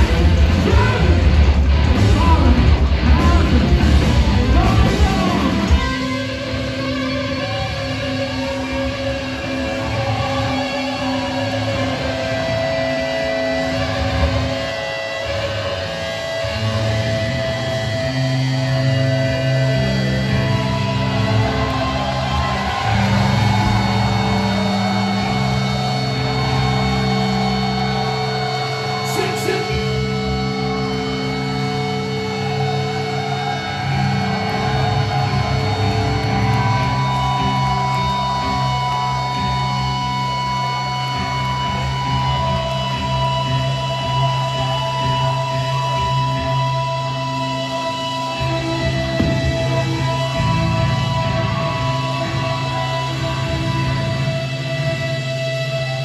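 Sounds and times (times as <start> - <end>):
live metal band playing: 0.0 - 56.0.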